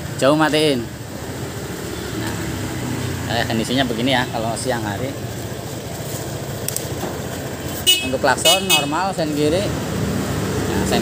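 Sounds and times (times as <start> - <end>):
scooter horn beep: 7.8 - 9.0.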